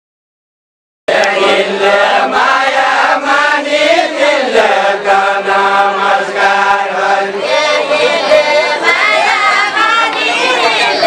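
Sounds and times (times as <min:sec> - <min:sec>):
group singing folk song: 0:01.1 - 0:11.0.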